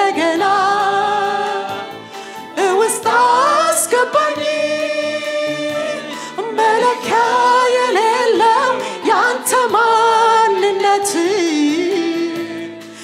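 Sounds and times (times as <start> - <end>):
choir singing: 0.0 - 12.8
woman singing into a microphone: 0.0 - 13.0.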